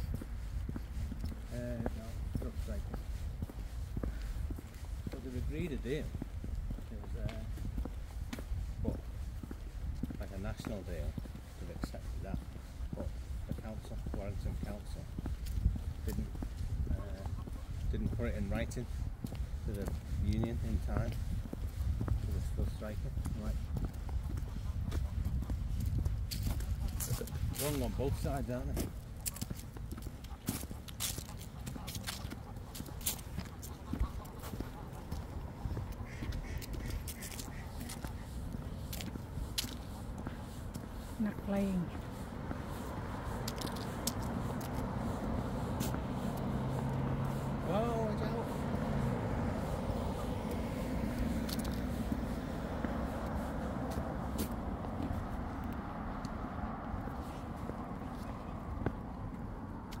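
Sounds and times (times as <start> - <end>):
footstep clicks on pavement: 0.0 - 60.0
road traffic rumble: 0.0 - 60.0
geese calling: 26.5 - 28.7, 30.2 - 55.5
car engine humming: 32.4 - 59.9.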